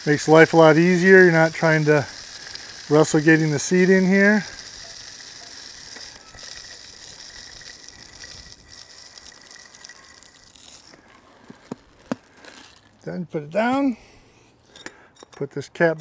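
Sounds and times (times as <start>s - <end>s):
bird seed pouring into a feeder: 0.0s - 13.0s.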